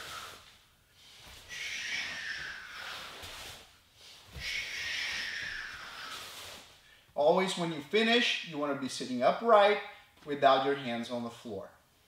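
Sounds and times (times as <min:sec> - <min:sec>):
man breathing hard: 0:00.0 - 0:07.2.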